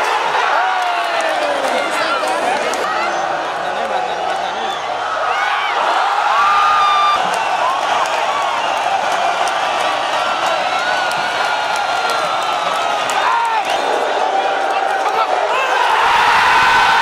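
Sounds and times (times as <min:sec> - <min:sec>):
stadium crowd cheering: 0:00.0 - 0:17.0.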